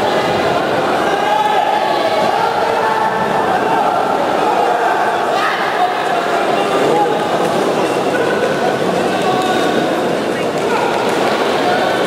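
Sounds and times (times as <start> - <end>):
spectators chanting and shouting: 0.0 - 12.0.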